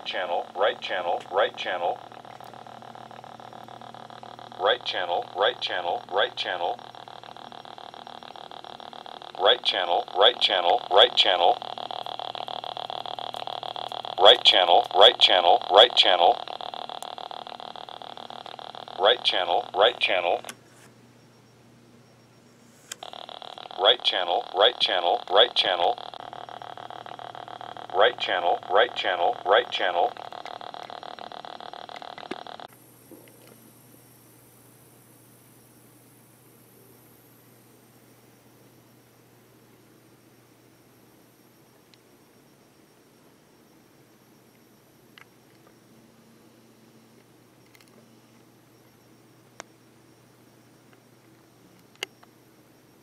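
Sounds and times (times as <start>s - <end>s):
rapid electrical ticking: 0.0s - 20.5s, 22.9s - 34.6s
speaker hum: 0.0s - 53.0s.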